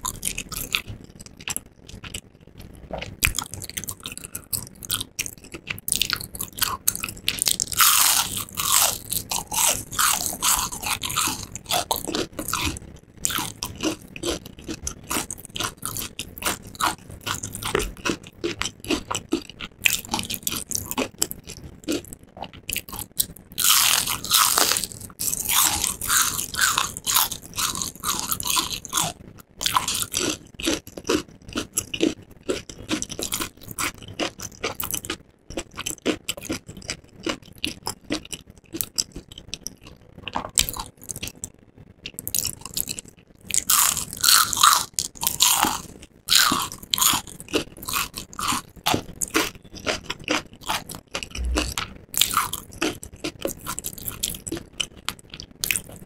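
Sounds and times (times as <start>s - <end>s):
crunching fried shrimp: 0.0s - 56.0s
crisp bites: 22.8s - 34.9s.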